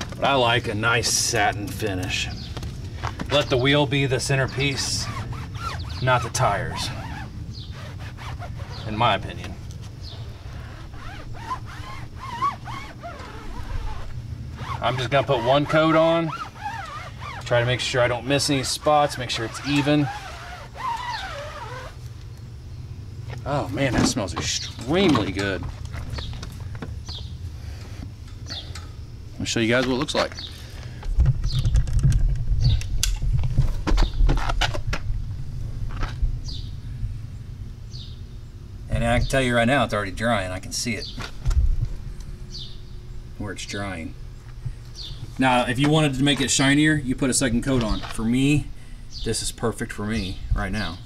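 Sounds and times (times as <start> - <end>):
birds chirping: 0.0 - 31.9, 36.4 - 51.0
steady low hum: 0.0 - 51.0
foam pad rubbing tire: 4.2 - 9.4, 10.0 - 22.1.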